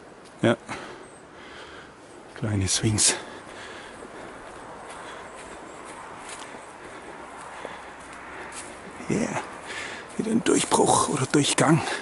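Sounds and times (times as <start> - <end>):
bare footsteps on dirt trail: 2.0 - 12.0.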